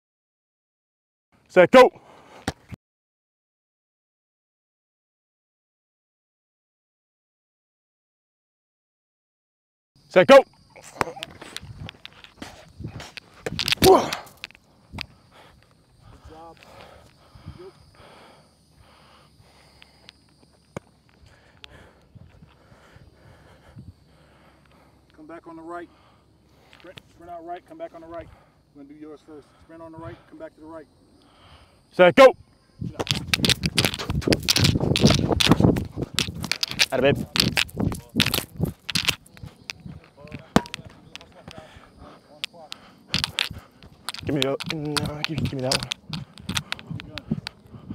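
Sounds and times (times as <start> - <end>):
sharp taps: 33.0 - 41.6.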